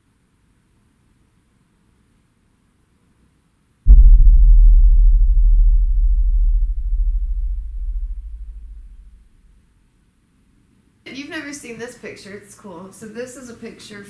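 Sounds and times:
deep rumbling boom: 3.9s - 9.3s.

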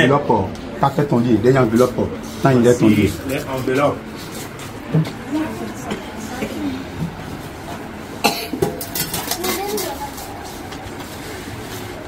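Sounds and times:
murmur of voices: 0.0s - 8.2s.

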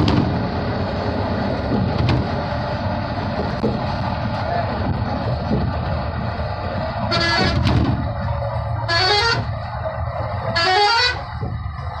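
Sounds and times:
vehicle rumbling over bridge: 0.0s - 12.0s
horn blasts: 7.0s - 7.8s, 8.8s - 9.6s, 10.5s - 11.4s.

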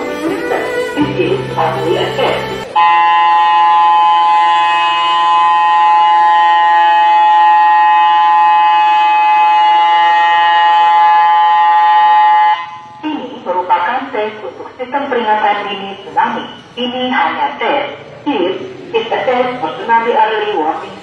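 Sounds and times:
siren steady tone: 2.6s - 13.2s.

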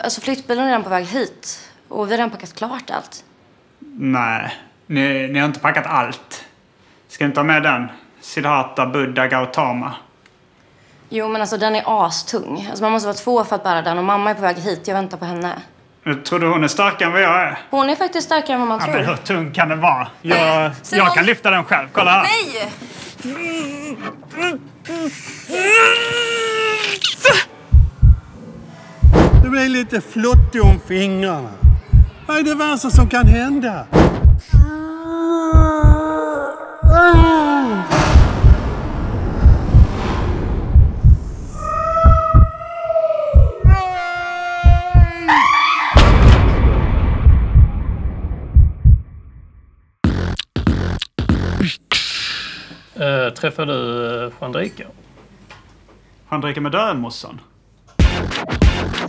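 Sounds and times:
man straining cry: 23.2s - 27.5s, 34.6s - 37.9s, 41.6s - 46.0s
heavy low thump: 27.7s - 28.3s, 29.0s - 29.6s, 30.3s - 30.9s, 31.6s - 32.2s, 33.0s - 34.7s, 35.6s - 36.0s, 36.8s - 37.3s, 37.9s - 42.5s, 43.4s - 43.8s, 44.6s - 45.1s, 46.0s - 49.7s
hard rhythmic stabs: 29.0s - 29.5s, 50.0s - 52.0s, 58.0s - 59.0s
person speaking: 29.4s - 33.7s
people screaming: 37.0s - 38.0s, 41.5s - 46.1s
loud crash: 37.8s - 41.6s, 46.0s - 49.7s.

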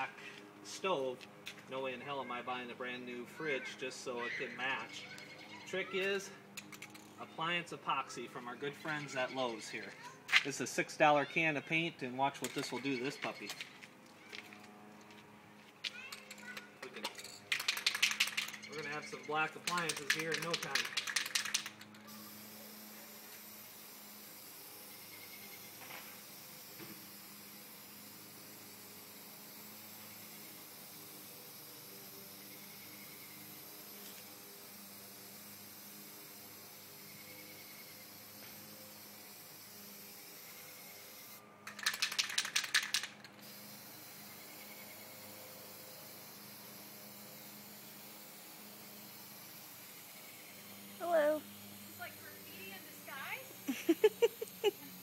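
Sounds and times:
spray can ball rattling: 12.3s - 13.8s, 15.9s - 44.4s, 45.2s - 52.2s, 53.4s - 55.0s
spray paint hissing: 15.8s - 55.0s.

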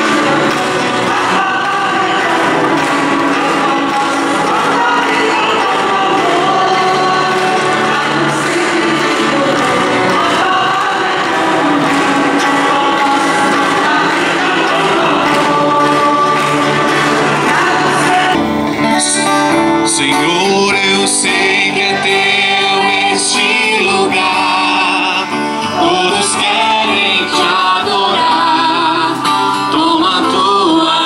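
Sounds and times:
several voices singing a hymn: 0.0s - 31.0s.

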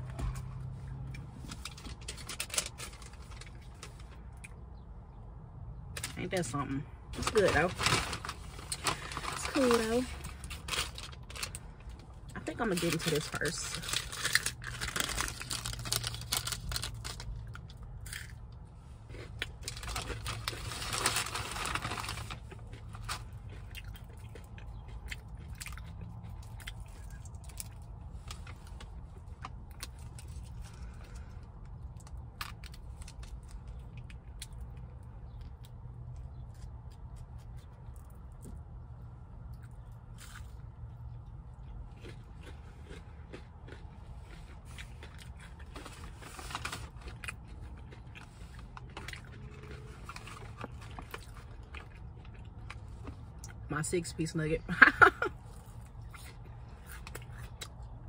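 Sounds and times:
crunchy chewing: 13.0s - 53.6s, 55.4s - 58.0s.

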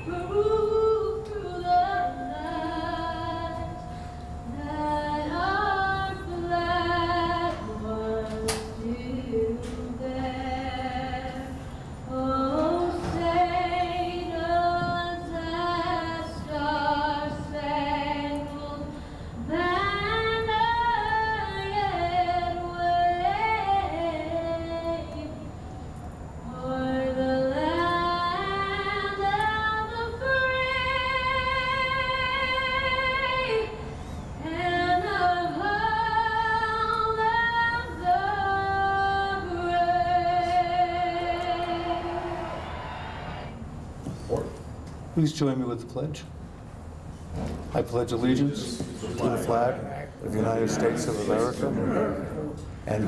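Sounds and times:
woman singing slow anthem: 0.0s - 25.6s, 26.4s - 42.6s.

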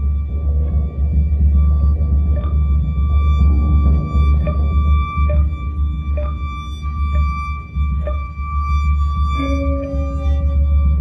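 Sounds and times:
drums: 0.0s - 11.0s
viola: 9.2s - 11.0s.

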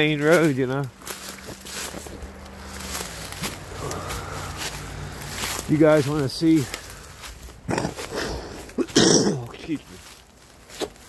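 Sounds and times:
footsteps through dry leaves: 0.0s - 11.0s
person coughing: 7.7s - 9.8s.

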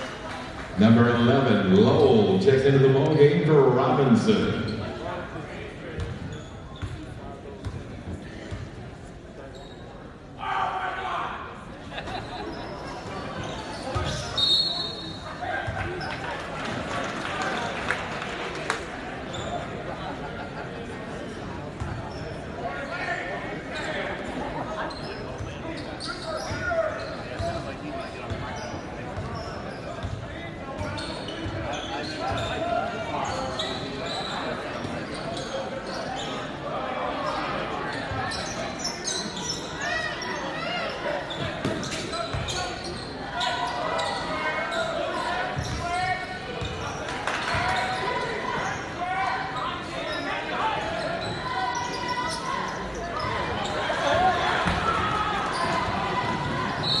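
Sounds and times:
basketball bouncing on court: 7.6s - 7.8s, 54.6s - 57.0s
spectators talking and calling out: 10.1s - 57.0s.

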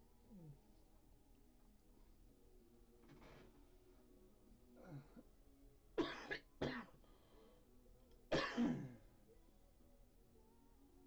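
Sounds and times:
person coughing: 8.3s - 9.0s.

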